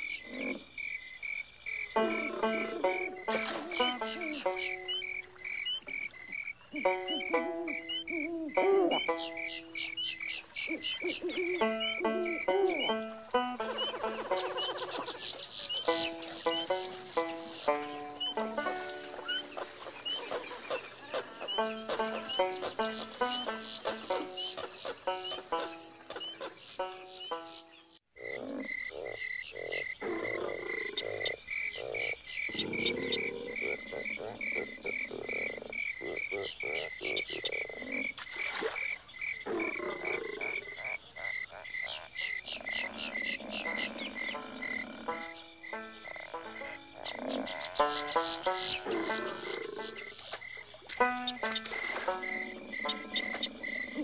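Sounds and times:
frogs croaking: 0.0 - 54.0.

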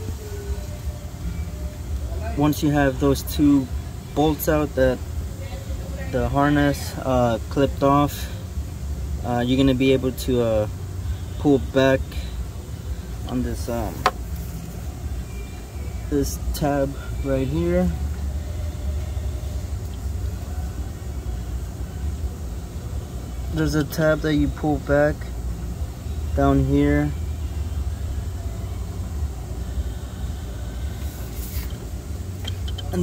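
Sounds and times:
low steady rumble: 0.0 - 33.0
vehicle engine idling: 0.0 - 33.0
high scraping hiss: 29.4 - 33.0.

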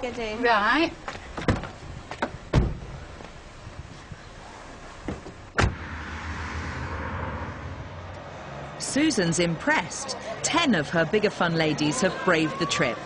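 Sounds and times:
car door slamming shut: 1.4 - 2.9, 5.1 - 5.9.

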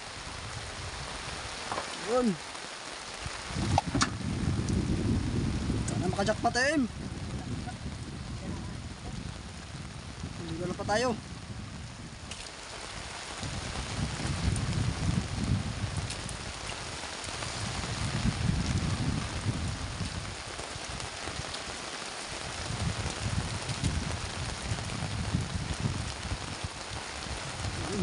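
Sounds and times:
rain on the sea: 0.0 - 28.0.

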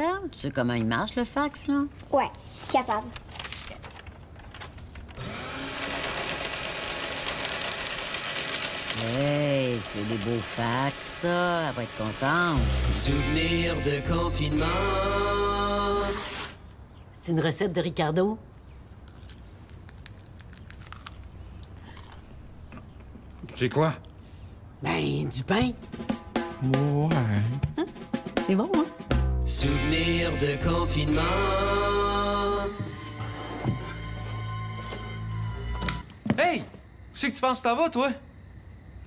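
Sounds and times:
electric paper shredder running: 5.2 - 13.2
man chewing crusty bread: 18.9 - 23.5.

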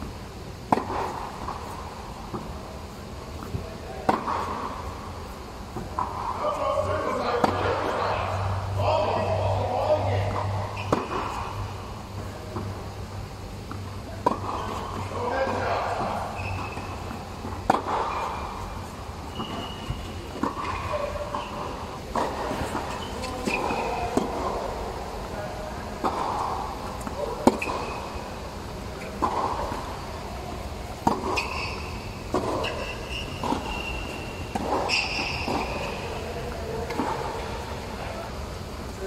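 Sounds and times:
tennis balls struck by rackets: 0.0 - 38.8
court shoes squeaking: 0.0 - 39.0
balls bouncing on hard court: 0.6 - 12.8, 13.6 - 24.7, 25.3 - 38.1.

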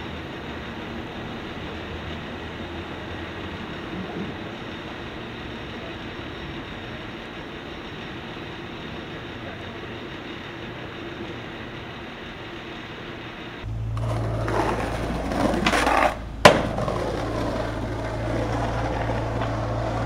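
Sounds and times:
city traffic hum: 0.0 - 20.0
skateboard wheels rolling on concrete: 0.0 - 20.0.

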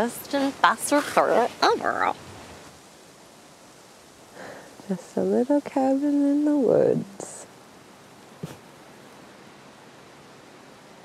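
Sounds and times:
person speaking: 0.0 - 2.2
faint steady hiss: 0.0 - 11.0.

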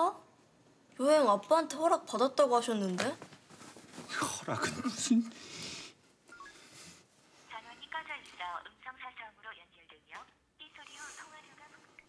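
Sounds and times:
faint phone beeps: 6.3 - 6.7
speech over telephone: 7.5 - 12.0.

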